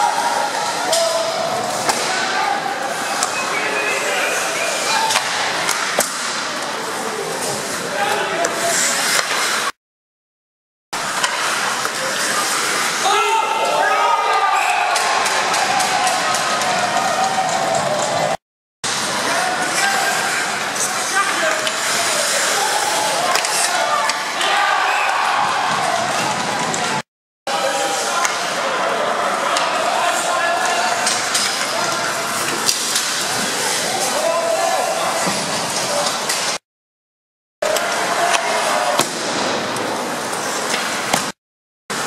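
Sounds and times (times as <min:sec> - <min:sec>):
hockey sticks and puck clacking: 0:00.5 - 0:09.7, 0:11.0 - 0:18.3, 0:18.9 - 0:27.0, 0:28.0 - 0:28.6, 0:29.4 - 0:36.6, 0:37.6 - 0:41.4
people shouting: 0:13.0 - 0:18.4, 0:22.1 - 0:26.9.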